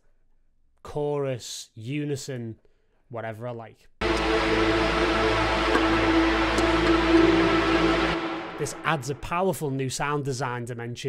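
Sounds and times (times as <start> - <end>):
dense held synthesizer tone: 4.0 - 9.6.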